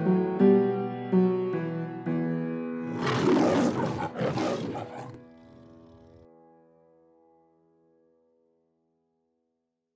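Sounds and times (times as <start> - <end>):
lion roaring: 2.9 - 6.3.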